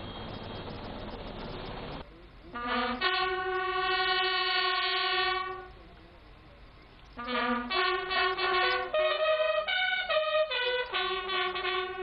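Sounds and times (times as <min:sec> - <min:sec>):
bugles playing long note: 0:02.5 - 0:05.9, 0:07.2 - 0:12.0.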